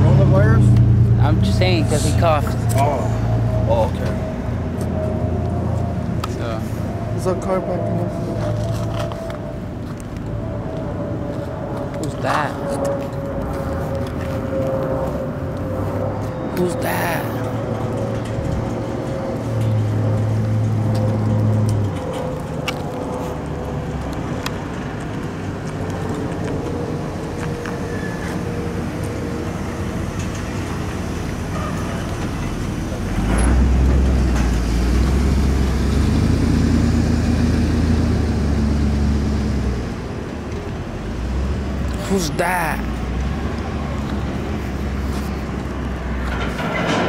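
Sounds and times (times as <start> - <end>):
truck engine deep rumble: 0.0 - 47.0.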